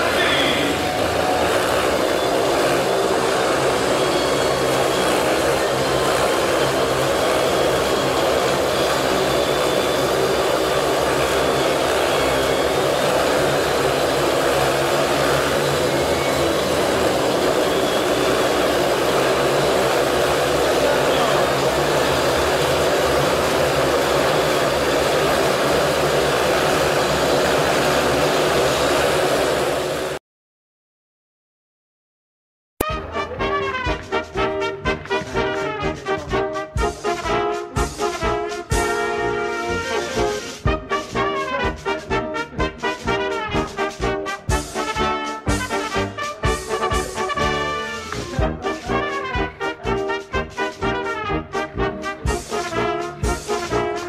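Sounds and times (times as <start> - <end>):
motorcycle engines running: 0.0 - 29.4.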